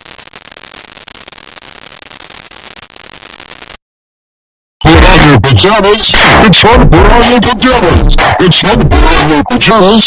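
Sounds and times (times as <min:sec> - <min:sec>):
distorted voice: 0:04.8 - 0:10.0.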